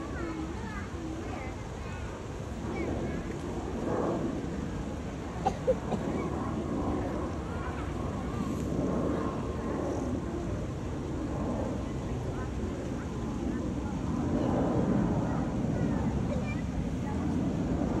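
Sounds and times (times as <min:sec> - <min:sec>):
people talking: 0:00.0 - 0:18.0.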